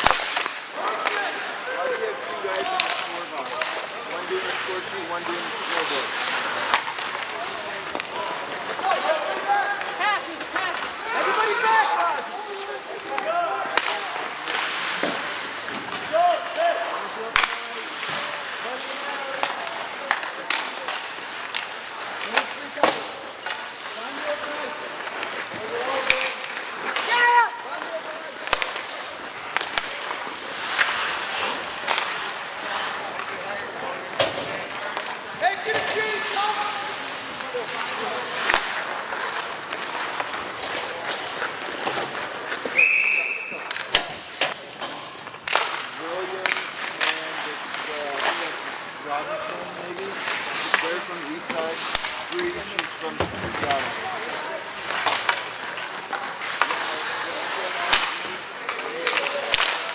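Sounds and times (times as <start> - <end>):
hockey sticks clacking on puck: 0.0 - 59.9
skates scraping ice: 0.0 - 59.9
referee's whistle: 42.7 - 43.6.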